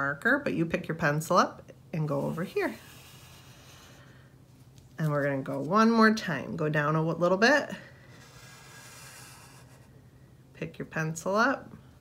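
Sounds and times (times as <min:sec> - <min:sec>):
felt-tip marker on paper: 0:02.1 - 0:04.1, 0:08.2 - 0:09.9.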